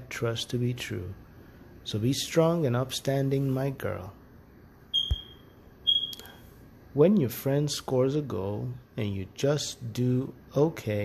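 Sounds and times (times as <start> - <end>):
high electronic beeps: 5.0 - 6.2.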